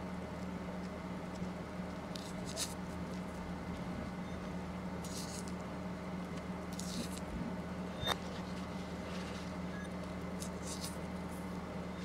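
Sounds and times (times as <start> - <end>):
low electrical hum: 0.0 - 12.0
orange peel tearing: 2.1 - 3.3, 5.0 - 5.6, 6.7 - 7.3, 10.3 - 11.5.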